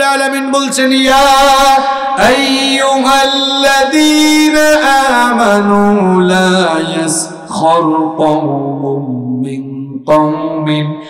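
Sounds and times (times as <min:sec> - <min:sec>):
man chanting recitation through microphone: 0:00.0 - 0:11.0.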